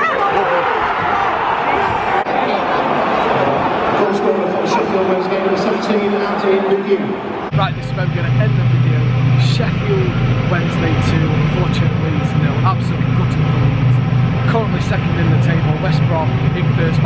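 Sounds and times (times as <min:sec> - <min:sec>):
voices: 0:00.0 - 0:17.0
low engine hum: 0:07.5 - 0:17.0.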